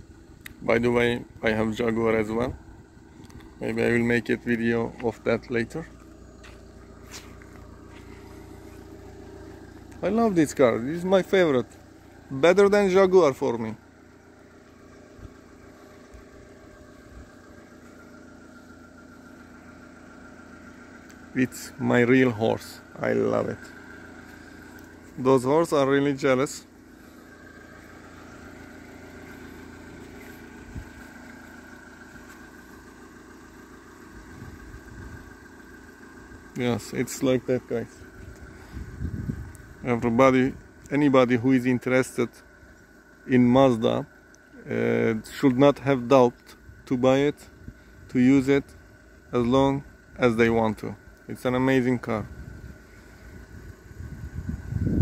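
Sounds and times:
petrol engine idling: 0.0 - 55.0.

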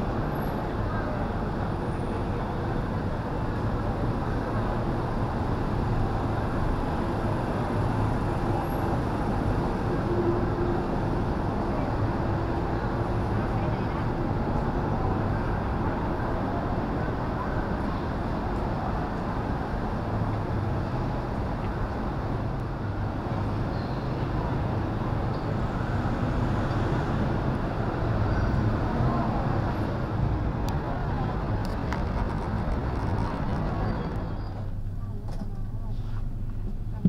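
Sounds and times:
traffic rumble: 0.0 - 37.0.

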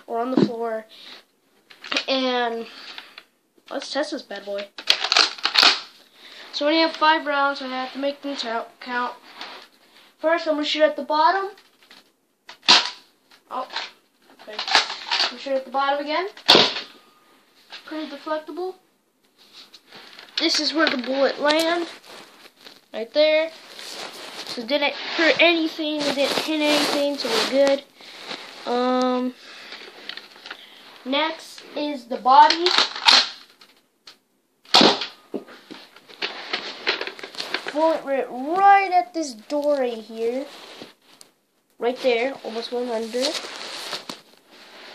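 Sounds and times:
toy blaster sharp pop: 34.7 - 35.2.

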